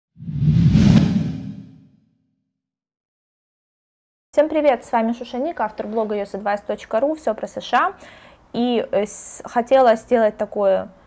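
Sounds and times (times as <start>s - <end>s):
low rumble: 0.2s - 1.9s
whoosh sound effect: 0.2s - 1.9s.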